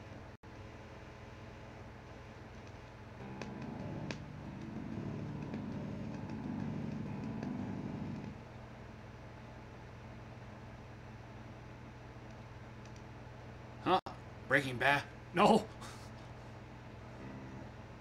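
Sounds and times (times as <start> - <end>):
bass amp hum and buzz: 3.2 - 8.4, 17.1 - 18.0
faint clicks: 12.2 - 13.1.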